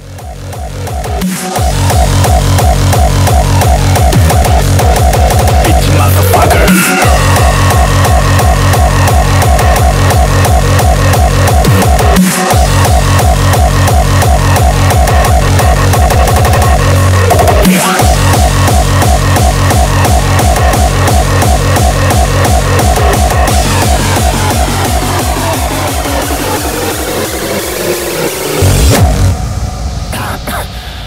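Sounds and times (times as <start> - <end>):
hardcore electronic music: 0.0 - 31.0
pounding distorted kick drums: 0.0 - 31.0.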